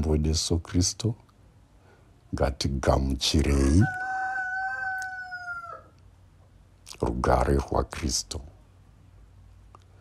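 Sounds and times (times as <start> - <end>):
rooster crowing: 3.6 - 6.0.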